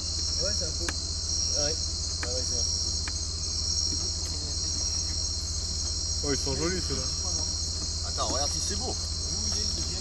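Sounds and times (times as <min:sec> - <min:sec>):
crickets and insects chirring: 0:00.0 - 0:10.0.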